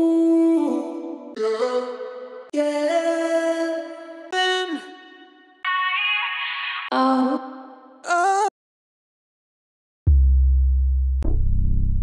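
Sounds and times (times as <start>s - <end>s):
deep sub-bass hits: 10.1s - 12.0s.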